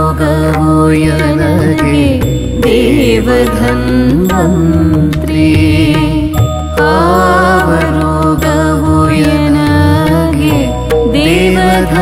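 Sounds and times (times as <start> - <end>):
female and male voices singing: 0.0 - 12.0
keyboard: 0.0 - 12.0
sarangi: 0.0 - 12.0
tabla: 0.0 - 12.0.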